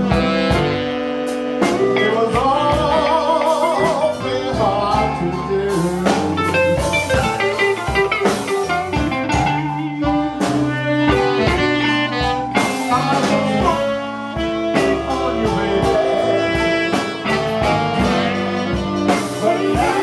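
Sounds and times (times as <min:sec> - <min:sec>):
blues band playing live: 0:00.0 - 0:20.0
saxophones: 0:00.0 - 0:20.0
steady drum beat: 0:00.0 - 0:20.0.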